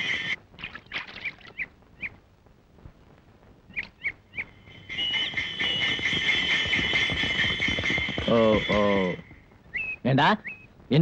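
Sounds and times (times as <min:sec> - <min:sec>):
birds chirping: 0:03.7 - 0:11.0
steady high shrill sound: 0:04.6 - 0:09.4.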